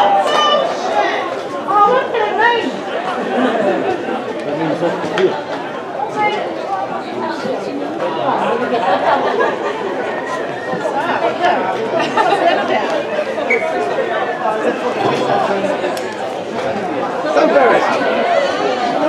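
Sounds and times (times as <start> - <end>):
many voices chattering: 0.0 - 19.0.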